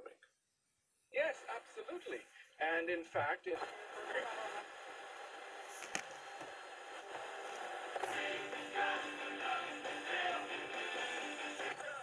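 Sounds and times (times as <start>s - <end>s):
radio static hiss: 1.2s - 12.0s
radio dial click: 3.6s - 8.2s.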